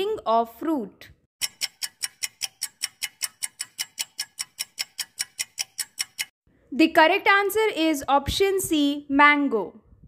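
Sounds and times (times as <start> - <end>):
clock ticking: 1.4 - 6.4.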